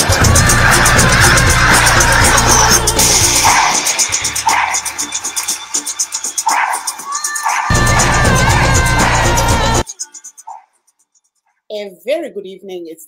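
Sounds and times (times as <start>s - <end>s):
upbeat theme music: 0.0s - 10.7s.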